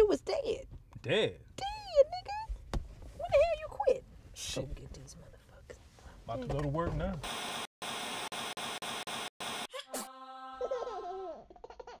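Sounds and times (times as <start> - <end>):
high-pitched laughter: 9.7 - 12.0.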